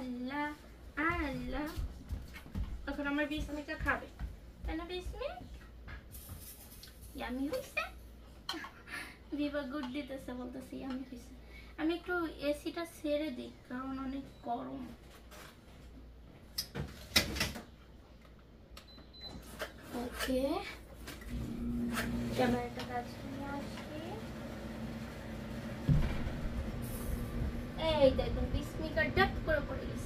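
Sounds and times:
steady low hum: 20.9s - 30.0s
person speaking: 22.1s - 24.4s
household knocks and rustles: 25.8s - 26.7s.

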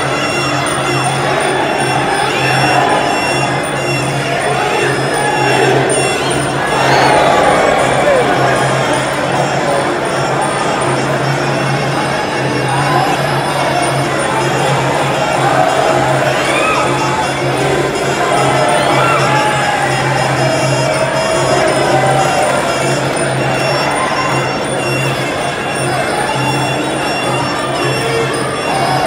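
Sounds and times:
crowd shouting and cheering: 0.0s - 29.0s.

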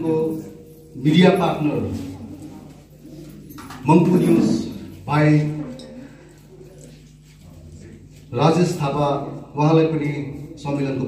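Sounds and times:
man speaking over loudspeakers: 0.0s - 2.2s, 3.7s - 5.9s, 8.2s - 11.0s.

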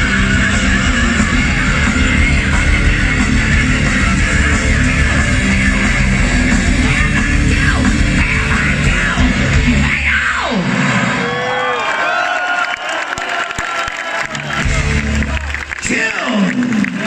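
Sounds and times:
heavy metal band playing: 0.0s - 11.5s, 14.2s - 16.2s
crowd cheering and shouting: 0.0s - 17.0s.

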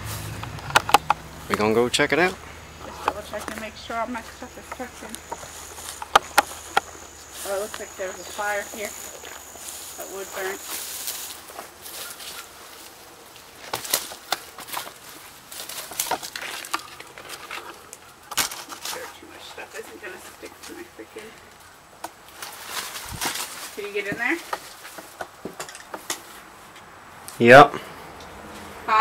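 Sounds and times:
footsteps crunching on dry leaves: 0.0s - 0.6s, 1.2s - 20.9s, 22.2s - 25.2s.

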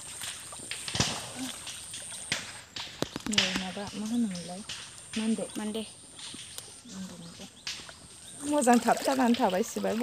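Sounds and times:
rustling of plants pulled from water: 0.0s - 10.0s
stalk snapping: 0.2s - 5.4s.

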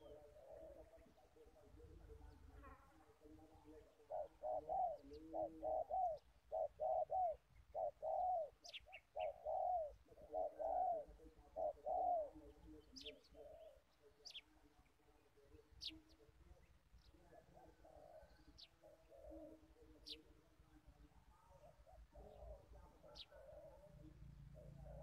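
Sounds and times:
dove cooing: 0.0s - 14.4s, 17.3s - 25.0s
small birds chirping: 0.0s - 25.0s.

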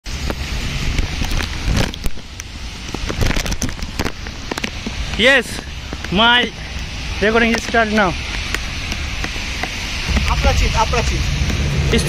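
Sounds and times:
rain drops on wet pavement: 0.1s - 12.0s
wind rumble on microphone: 0.1s - 12.0s.

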